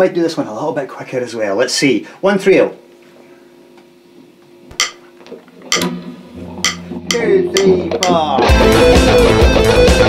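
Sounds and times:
metronome clicks: 0:04.8 - 0:05.0, 0:05.6 - 0:06.0, 0:06.6 - 0:08.4.

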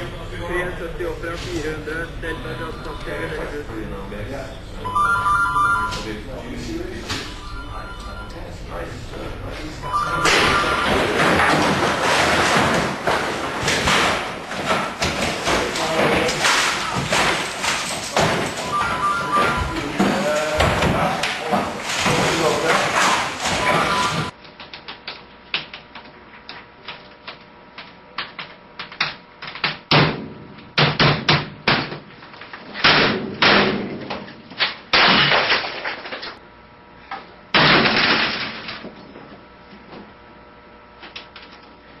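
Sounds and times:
voices: 0:00.0 - 0:12.0, 0:18.1 - 0:24.3
dense clatter: 0:10.3 - 0:18.8.

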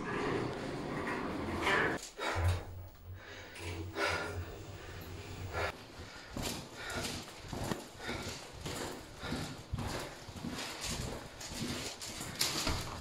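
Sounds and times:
footsteps on a hard floor: 0:02.0 - 0:13.0.

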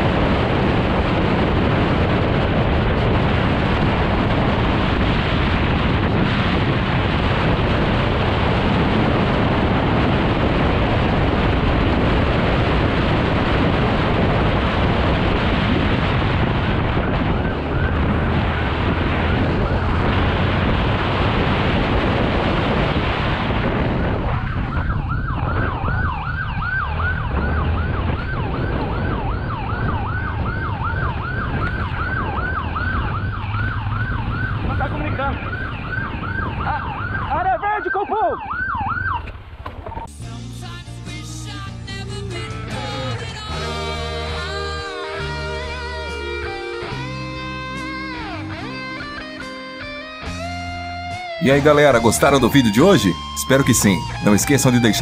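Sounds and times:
wind rush: 0:00.0 - 0:37.6, 0:42.7 - 0:55.0
police siren yelping: 0:16.7 - 0:20.1, 0:24.2 - 0:39.4, 0:43.5 - 0:55.0.

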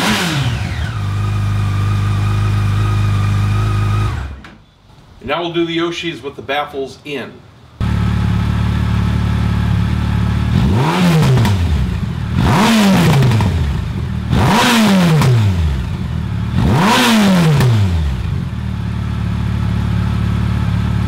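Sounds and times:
motorcycle engine idling and revving: 0:00.0 - 0:04.4, 0:07.8 - 0:21.0.

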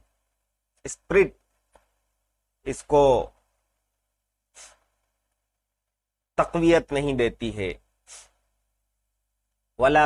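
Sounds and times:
man speaking: 0:02.6 - 0:03.4, 0:06.4 - 0:07.8, 0:09.8 - 0:10.0.

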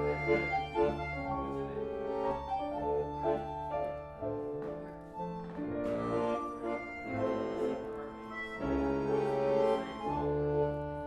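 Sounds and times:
accordion melody: 0:00.0 - 0:11.0.

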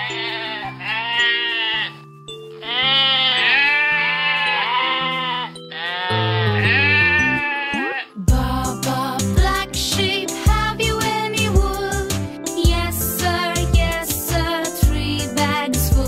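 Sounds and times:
sheep bleating: 0:00.0 - 0:02.0, 0:02.6 - 0:08.2
music of held chords: 0:00.0 - 0:16.0.

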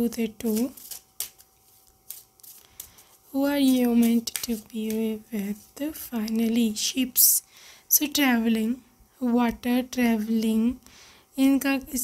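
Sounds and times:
cards being shuffled by hand: 0:00.1 - 0:06.6.

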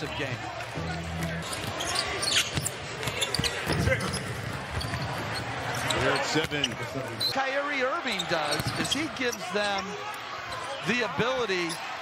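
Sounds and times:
high shoe squeak: 0:01.4 - 0:07.4, 0:08.1 - 0:09.8.

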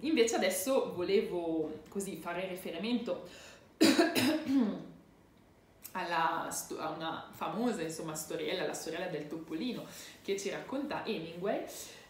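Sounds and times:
woman coughing: 0:03.8 - 0:04.9.

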